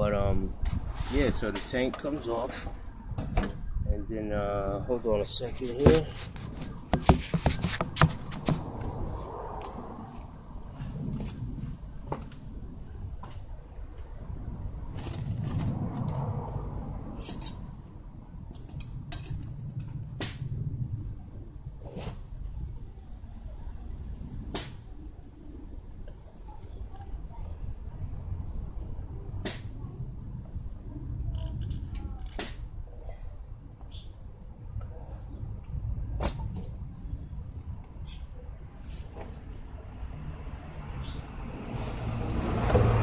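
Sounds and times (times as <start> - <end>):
light clicks and clinks of tools: 17.2 - 17.6.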